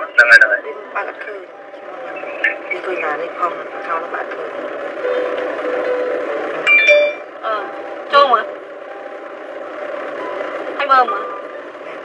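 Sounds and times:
car cabin road noise: 0:00.0 - 0:12.0
bell-like chime: 0:06.7 - 0:07.2.

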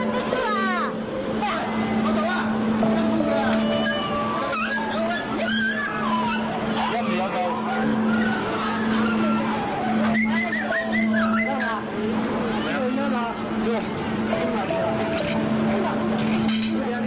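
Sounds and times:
low machine hum: 0:00.0 - 0:17.0
animals squealing: 0:03.7 - 0:11.9.

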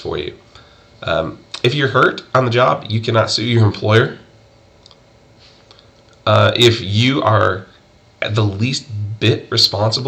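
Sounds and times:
man speaking: 0:00.0 - 0:00.4, 0:01.0 - 0:04.3, 0:06.2 - 0:10.0.

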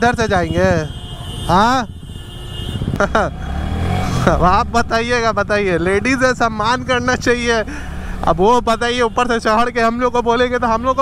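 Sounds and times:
road noise: 0:00.0 - 0:11.0
motorcycle engine pulling away: 0:03.1 - 0:07.5.

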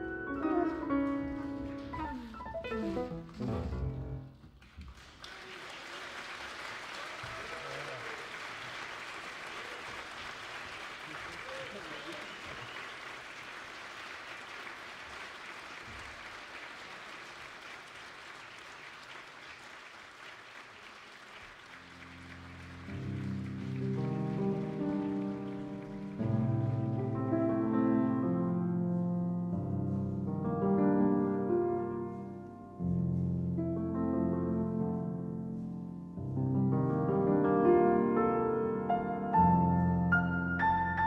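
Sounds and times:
music: 0:00.0 - 0:04.4, 0:21.6 - 0:41.0
audience applauding: 0:00.4 - 0:27.2.

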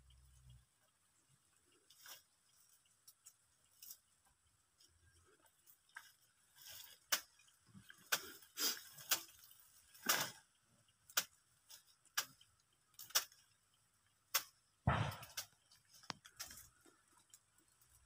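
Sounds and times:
heavy thud: 0:14.9 - 0:15.4.

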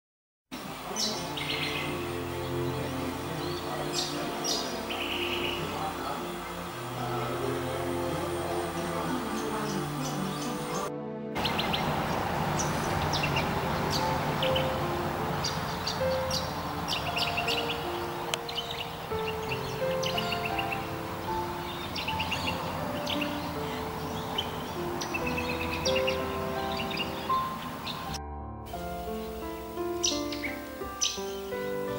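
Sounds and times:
birds chirping: 0:00.6 - 0:31.9
soft instrumental music: 0:00.6 - 0:31.9.

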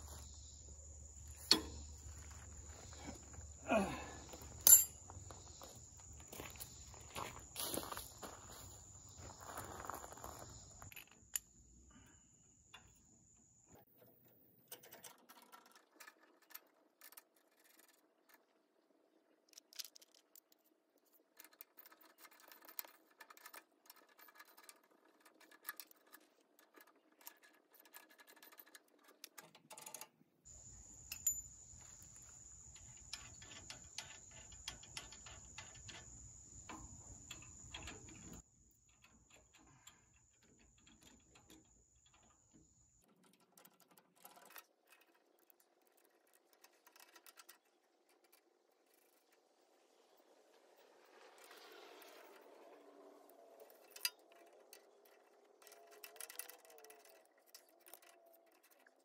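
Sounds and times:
chain links rattling: 0:04.3 - 0:05.7.

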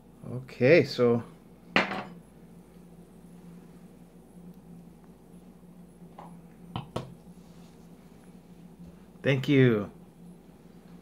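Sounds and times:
wine glass set on table: 0:01.8 - 0:02.2.

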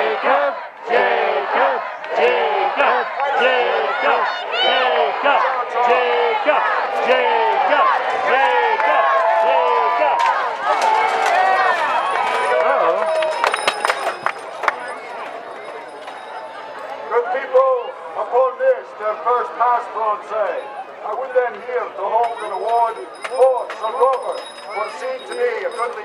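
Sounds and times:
spectators cheering and shouting: 0:00.0 - 0:26.0.

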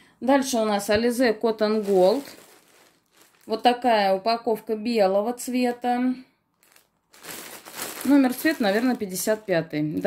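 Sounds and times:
plastic shrink-wrap crinkling: 0:01.0 - 0:04.0, 0:06.5 - 0:10.0.

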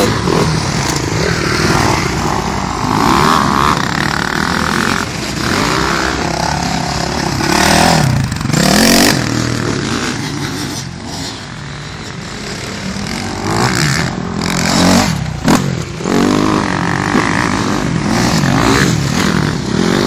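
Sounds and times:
dirt bike engines revving: 0:00.0 - 0:20.0.

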